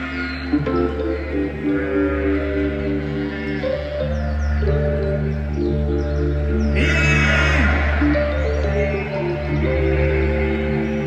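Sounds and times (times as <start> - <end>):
deep bass drone: 0.0 - 11.0
keyboard chords: 0.0 - 11.0.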